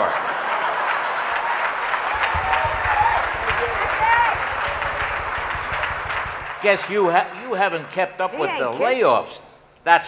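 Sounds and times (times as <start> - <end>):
audience applause: 0.0 - 8.0.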